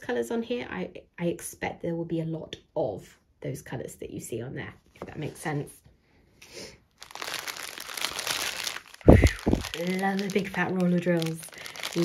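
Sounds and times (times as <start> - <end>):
plastic sleeve crinkling: 6.9 - 12.0.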